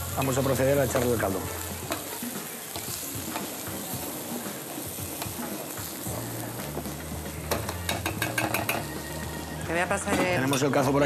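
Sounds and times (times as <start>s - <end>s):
rice sizzling in a hot pan: 0.0s - 11.0s.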